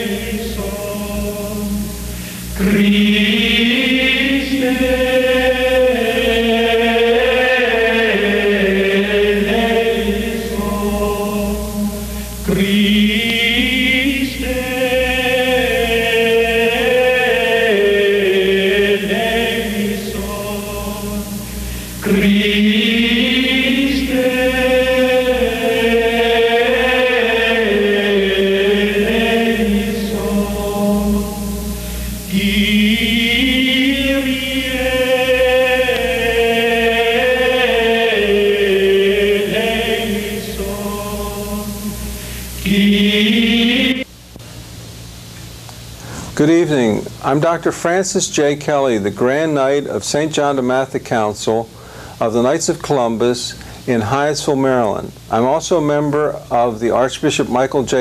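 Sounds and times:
low steady hum: 0.0s - 58.0s
slow chanted vocal music: 0.0s - 58.0s.

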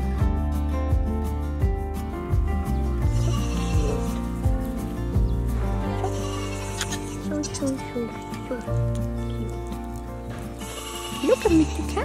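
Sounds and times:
background music sustained tones: 0.0s - 12.0s
goats bleating: 3.1s - 4.2s, 6.0s - 7.5s, 10.6s - 11.6s.

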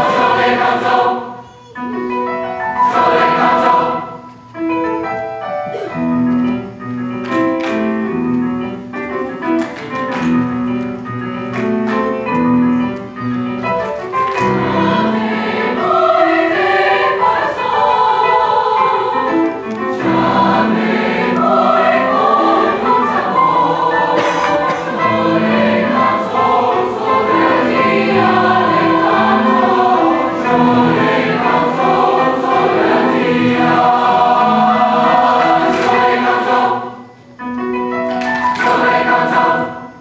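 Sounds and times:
mixed choir singing: 0.0s - 1.5s, 2.6s - 4.4s, 14.2s - 37.2s, 38.4s - 40.0s.

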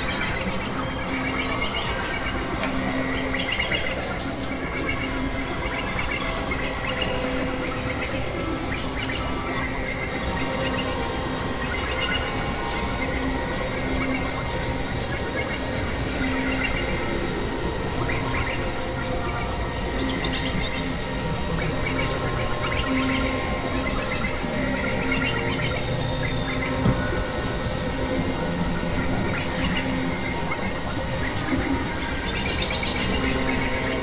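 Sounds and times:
noisy synthesizer drone: 0.0s - 34.0s.

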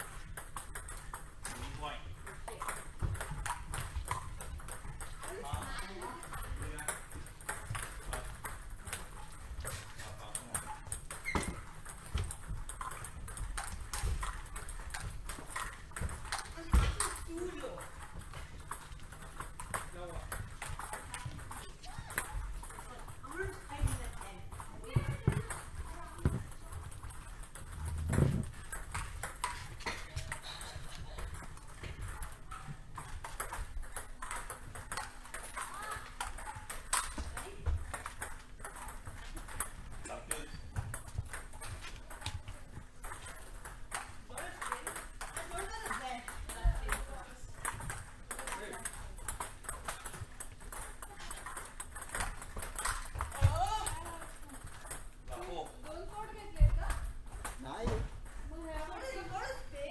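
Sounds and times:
table tennis balls clicking: 0.0s - 59.9s.

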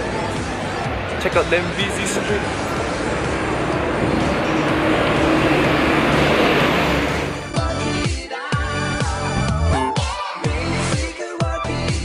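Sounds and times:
vehicle engine hum: 0.0s - 7.6s
road traffic noise: 0.0s - 8.0s.

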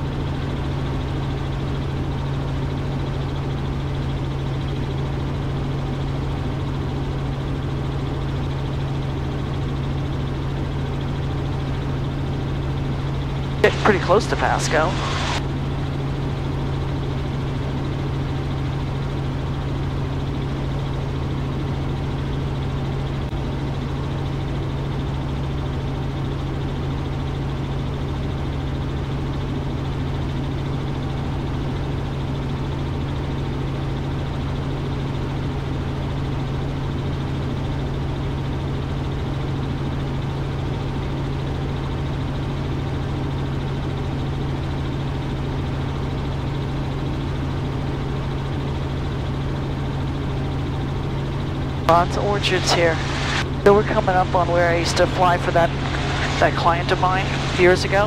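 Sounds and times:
helicopter engine and rotors drone: 0.0s - 58.0s.

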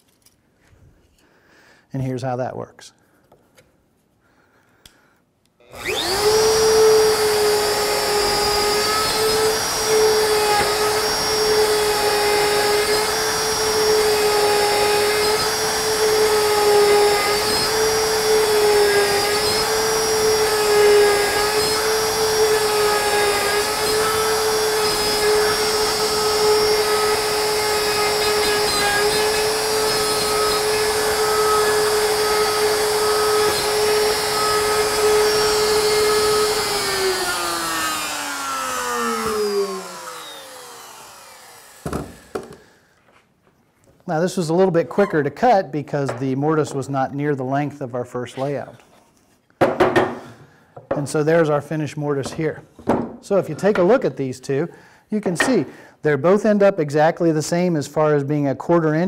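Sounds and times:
router cutting wood: 5.6s - 42.7s.

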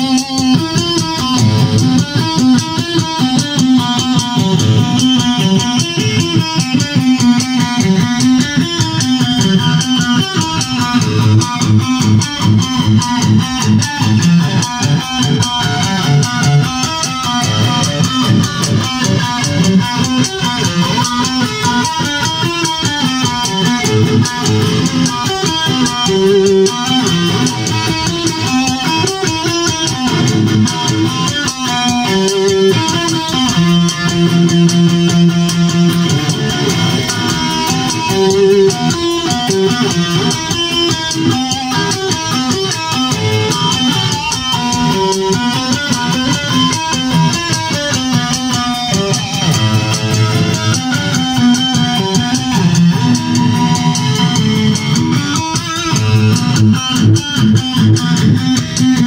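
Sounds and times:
plucked electric guitar: 0.0s - 59.0s.

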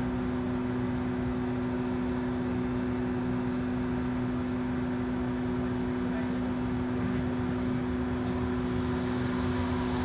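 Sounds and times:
bus running gear hum: 0.0s - 10.0s.

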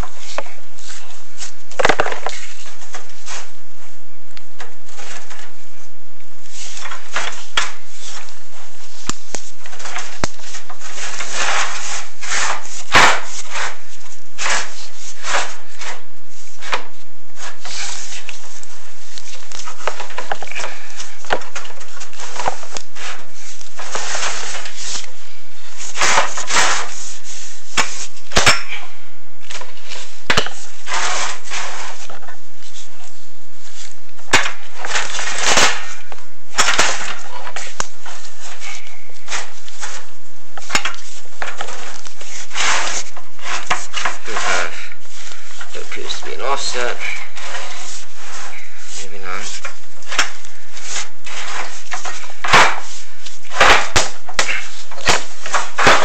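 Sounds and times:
camera cable scraping in flue pipe: 36.6s - 56.0s.

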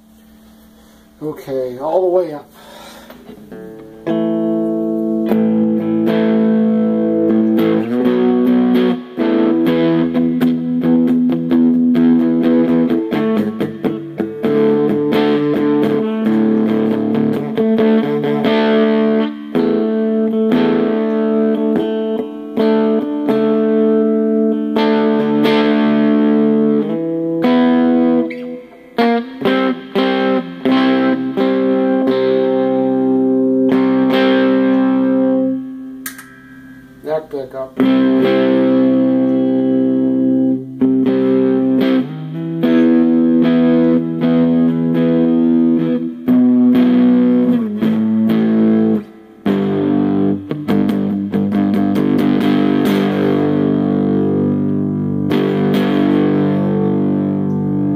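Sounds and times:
distorted electric guitar chords: 2.6s - 57.9s.

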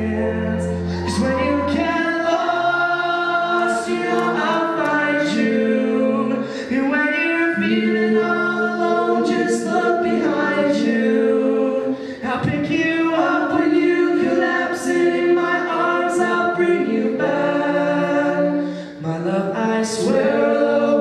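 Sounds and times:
band instruments: 0.0s - 13.7s
voices singing rock refrain: 0.0s - 18.8s.

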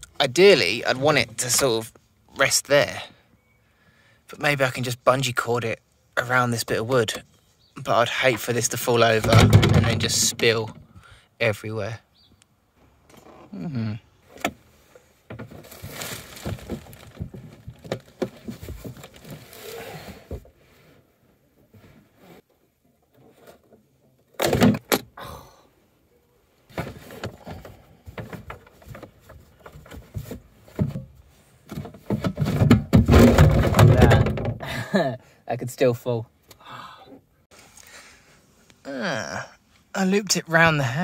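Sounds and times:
plastic container knocks and scrapes: 9.2s - 10.4s, 15.3s - 19.5s, 31.7s - 34.6s.

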